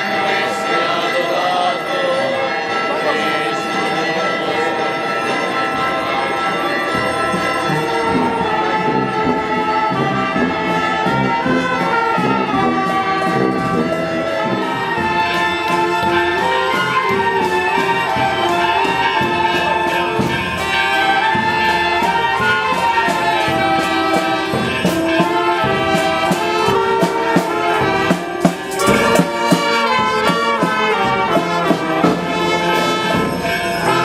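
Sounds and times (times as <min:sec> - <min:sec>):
clarinets and brass: 0:00.0 - 0:34.0
sousaphone melody: 0:00.2 - 0:34.0
drum strokes: 0:11.2 - 0:33.6.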